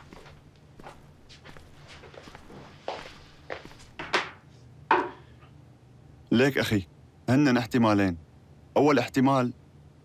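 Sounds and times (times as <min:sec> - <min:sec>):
footsteps on wooden floor: 0:00.0 - 0:04.3.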